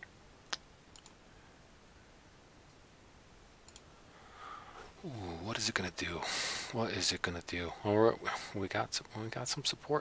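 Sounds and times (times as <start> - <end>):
computer mouse clicking: 0.9 - 1.2, 3.7 - 3.9.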